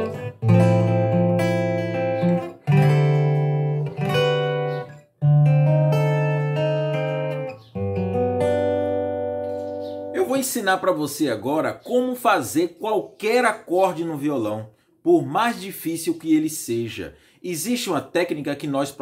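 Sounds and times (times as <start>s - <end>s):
acoustic guitar chords ringing: 0.0s - 11.0s.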